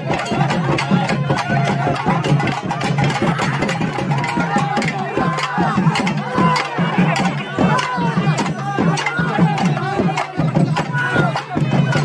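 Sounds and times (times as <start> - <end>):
crowd voices: 0.0 - 12.0
fast dense drumming: 0.0 - 12.0.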